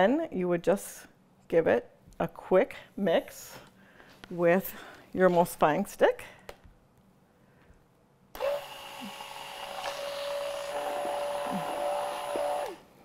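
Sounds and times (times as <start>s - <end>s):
stick blender motor whining: 8.4s - 13.0s.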